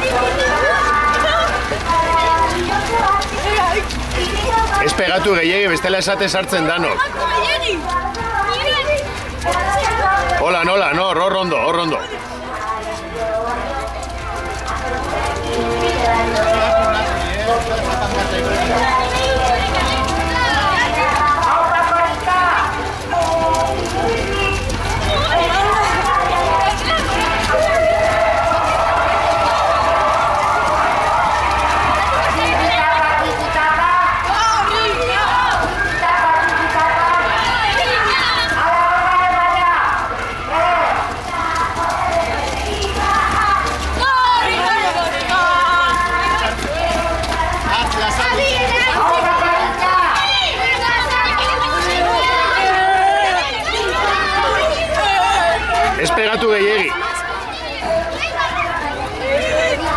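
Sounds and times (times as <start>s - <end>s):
children calling and chattering: 0.0s - 59.9s.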